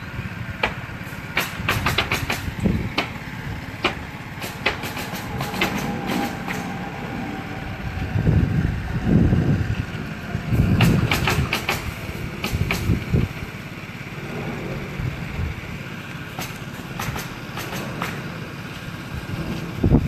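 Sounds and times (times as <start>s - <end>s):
nails driven into shingles: 0.6s - 6.6s, 10.7s - 13.0s, 16.3s - 18.5s
low rumble: 2.5s - 17.0s.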